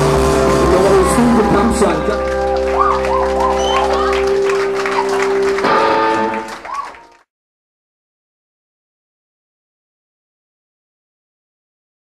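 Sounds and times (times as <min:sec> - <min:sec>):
rock music with guitar: 0:00.0 - 0:06.5.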